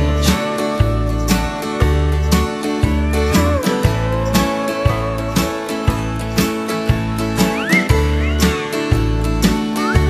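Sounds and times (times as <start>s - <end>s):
bass: 0.0s - 10.0s
country band playing: 0.0s - 10.0s.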